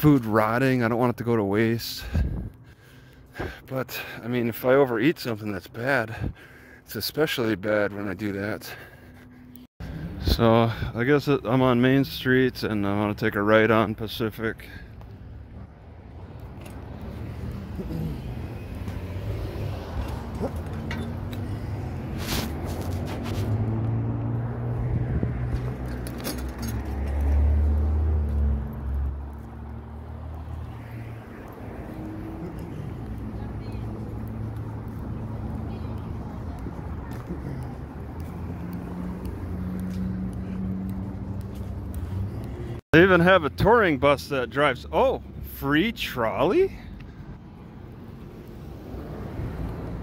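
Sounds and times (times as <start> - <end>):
vehicles driving past: 0.0 - 50.0.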